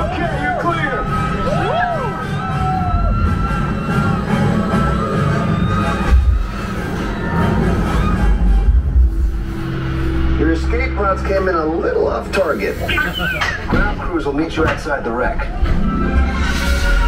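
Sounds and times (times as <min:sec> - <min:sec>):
heavy surging low rumble: 0:00.0 - 0:17.0
music: 0:00.0 - 0:17.0.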